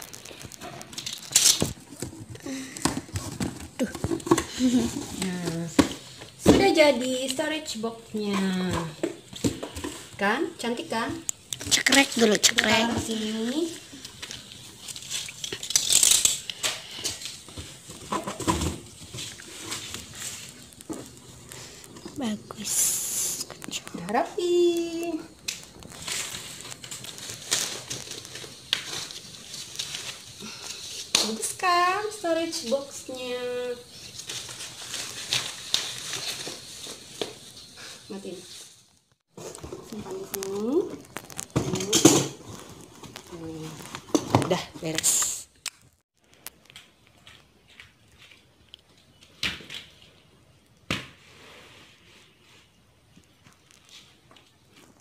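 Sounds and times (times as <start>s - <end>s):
paper rustling: 11.6s - 31.4s, 33.4s - 41.6s.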